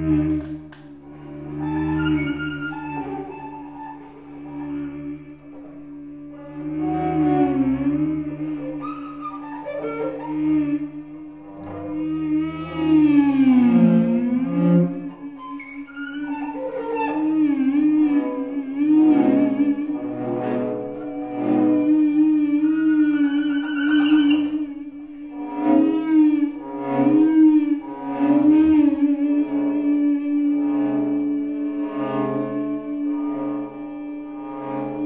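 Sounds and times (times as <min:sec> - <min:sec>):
cello sustained tones: 0:00.0 - 0:35.0
electric guitar sustained tones: 0:00.0 - 0:35.0.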